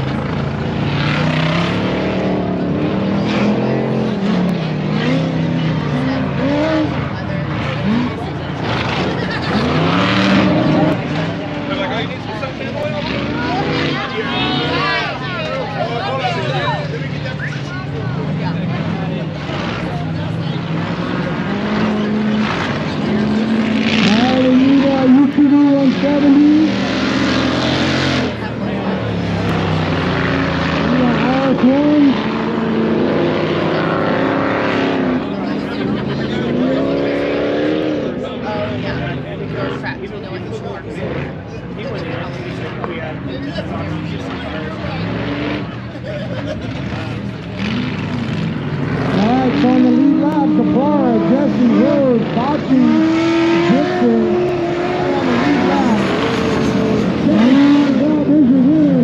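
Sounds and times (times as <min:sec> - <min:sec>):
race car engines revving: 0:00.0 - 0:59.0
voices: 0:00.0 - 0:59.0.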